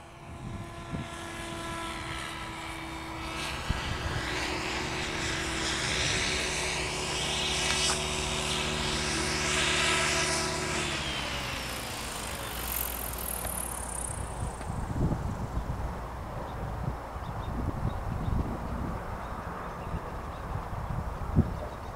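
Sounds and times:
propeller aircraft engine droning: 0:00.0 - 0:21.9.

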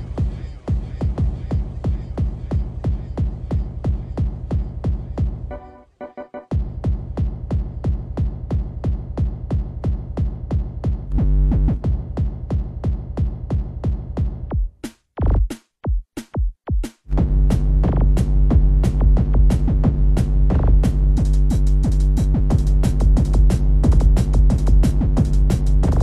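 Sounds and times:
hard kick drum pounding: 0:00.0 - 0:05.5, 0:06.5 - 0:26.0.

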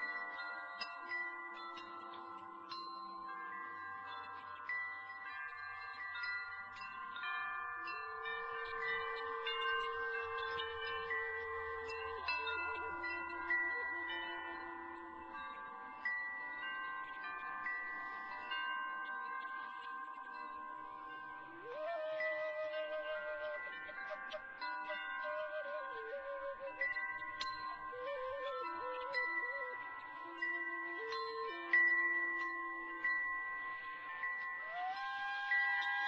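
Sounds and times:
metal wind chimes ringing: 0:00.0 - 0:36.0
flute long low notes: 0:07.8 - 0:16.0, 0:21.4 - 0:34.0, 0:34.6 - 0:36.0.

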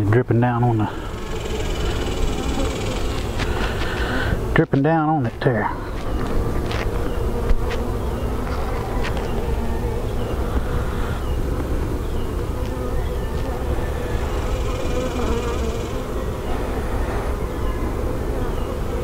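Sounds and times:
honey bees buzzing: 0:00.0 - 0:19.0.

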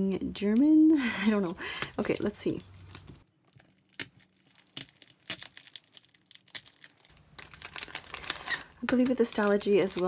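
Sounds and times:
paper and plastic crinkling: 0:01.5 - 0:10.0.

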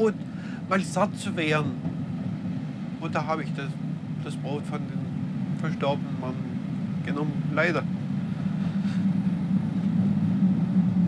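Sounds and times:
passenger train rumbling: 0:00.0 - 0:11.0.

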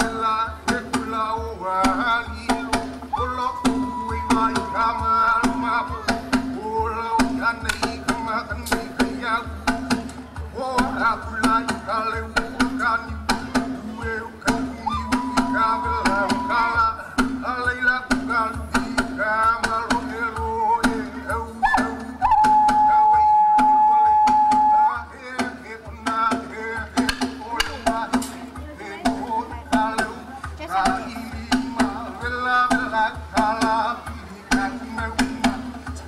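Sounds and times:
person singing: 0:00.0 - 0:09.9, 0:10.5 - 0:36.0
sharp percussion strikes: 0:01.8 - 0:13.9, 0:14.5 - 0:20.1.

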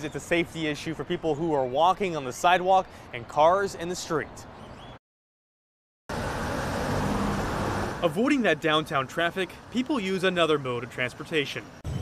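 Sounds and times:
cars and trucks driving past: 0:06.1 - 0:12.0.

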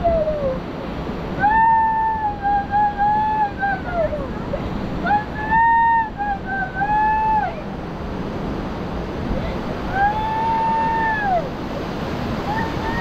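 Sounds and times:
child calling out: 0:12.5 - 0:13.0.

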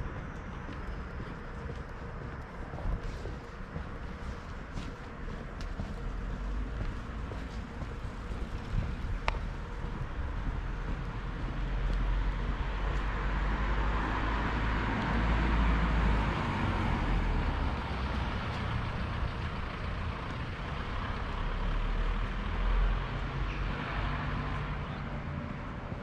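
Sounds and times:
low traffic rumble: 0:00.0 - 0:26.0
vehicle passing: 0:00.0 - 0:26.0.

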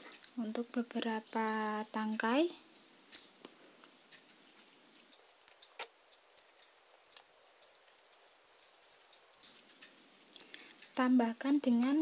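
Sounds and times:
faint clicks: 0:02.7 - 0:11.0
hands rustling crocheted flowers: 0:04.5 - 0:10.3.

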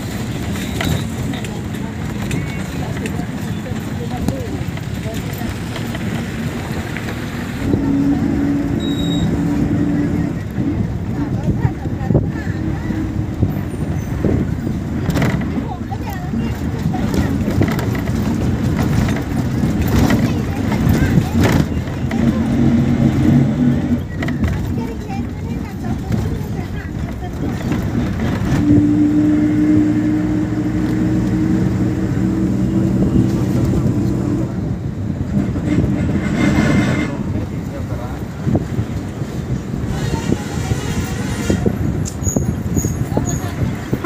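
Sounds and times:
bus engine running: 0:00.0 - 0:44.0
passengers' voices: 0:00.0 - 0:44.0
road and wind noise: 0:00.0 - 0:44.0.

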